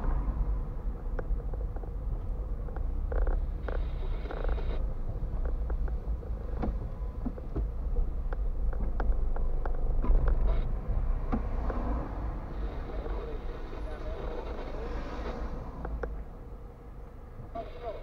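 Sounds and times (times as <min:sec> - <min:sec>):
car engine and road rumble: 0:00.0 - 0:18.0.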